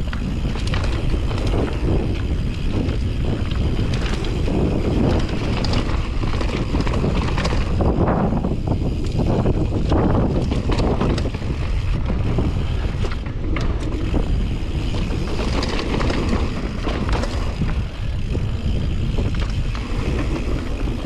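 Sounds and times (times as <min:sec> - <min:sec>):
bike rattling and knocking: 0:00.0 - 0:21.0
bike tyres rolling on dirt: 0:00.0 - 0:21.0
wind buffeting microphone: 0:00.0 - 0:21.0.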